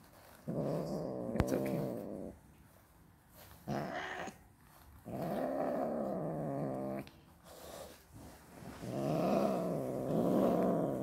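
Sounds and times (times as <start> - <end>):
cat growling: 0.4 - 2.4, 3.6 - 4.4, 5.0 - 7.9, 8.8 - 11.0.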